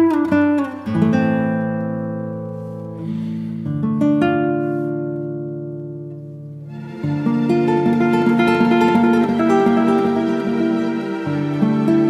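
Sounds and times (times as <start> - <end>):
guitar chord ringing: 0.0 - 12.0.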